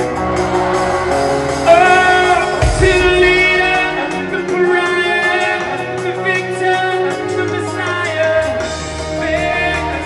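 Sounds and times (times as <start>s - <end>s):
drums: 0.0s - 10.0s
person singing: 1.6s - 10.0s.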